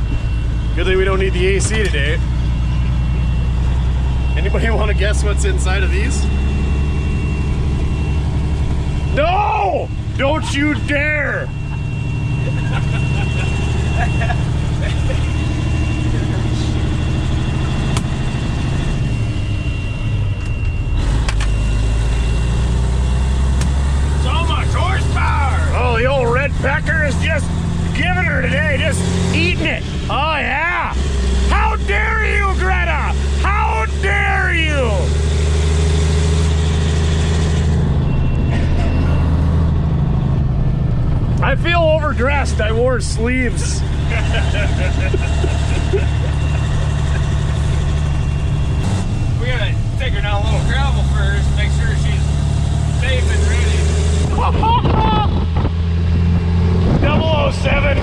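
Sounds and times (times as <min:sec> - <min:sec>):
diesel truck engine under load: 0:00.0 - 0:58.0.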